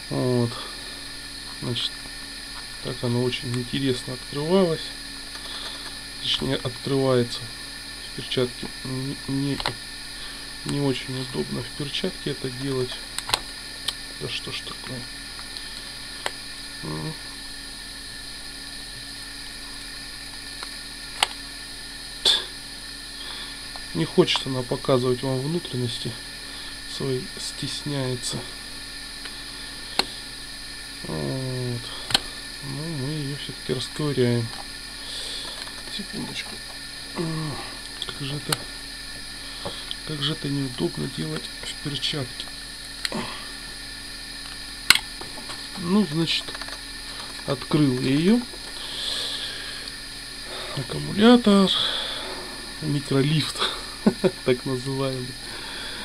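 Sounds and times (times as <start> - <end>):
steady hiss: 0.0 - 56.0.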